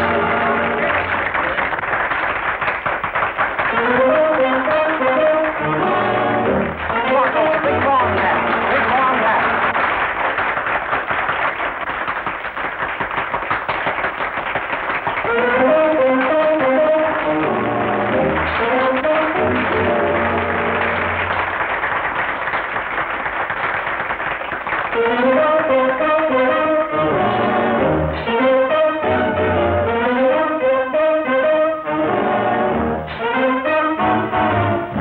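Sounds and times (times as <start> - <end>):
dance band music: 0.0 - 1.7, 3.6 - 10.0, 15.1 - 21.6, 24.9 - 35.0.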